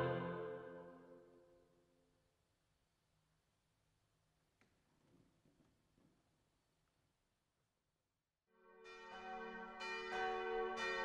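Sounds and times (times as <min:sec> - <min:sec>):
church bells ringing: 0:08.7 - 0:11.0.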